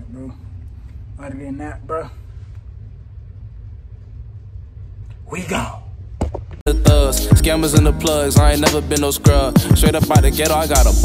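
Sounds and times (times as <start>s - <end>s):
low background rumble: 0.0s - 8.5s.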